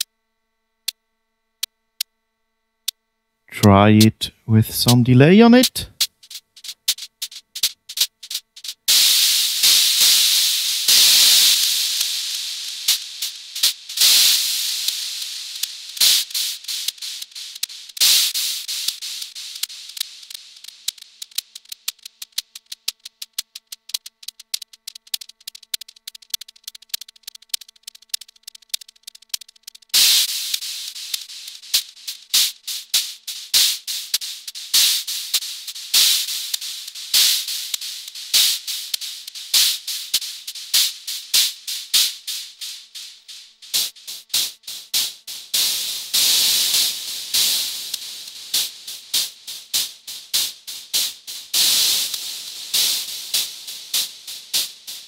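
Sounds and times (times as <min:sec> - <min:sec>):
bursts of bright hiss: 0:03.5 - 0:23.3, 0:29.3 - 0:55.0
crackling clicks with echoes: 0:04.2 - 0:55.0.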